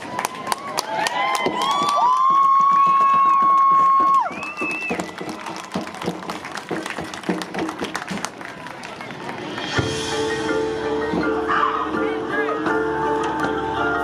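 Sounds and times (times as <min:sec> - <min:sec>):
marching band held notes: 0:02.9 - 0:14.0.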